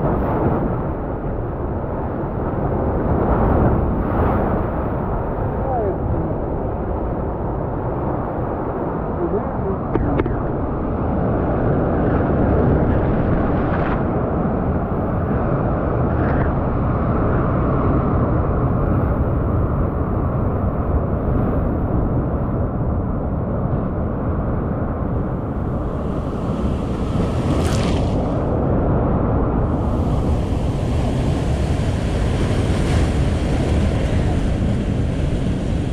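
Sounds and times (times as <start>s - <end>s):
wind rumble on microphone: 0.0s - 35.9s
surf breaking over rocks: 25.1s - 35.9s.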